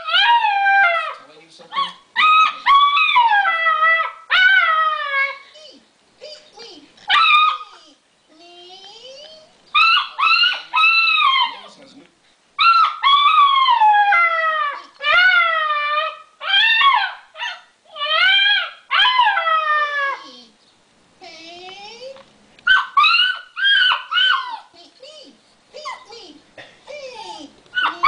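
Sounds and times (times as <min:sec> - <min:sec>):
puppy howling: 0:00.0 - 0:05.5, 0:07.1 - 0:08.6, 0:09.3 - 0:11.8, 0:12.6 - 0:20.5, 0:22.7 - 0:24.7, 0:26.9 - 0:28.0.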